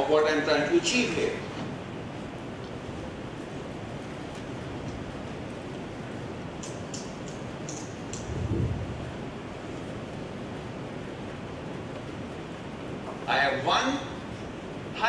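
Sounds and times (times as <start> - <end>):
room noise hiss: 0.0 - 15.0.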